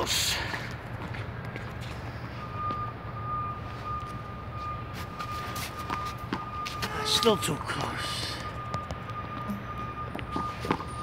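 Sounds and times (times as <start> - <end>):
low rumble of traffic: 0.0 - 11.0
reversing alarm beeping: 1.8 - 11.0.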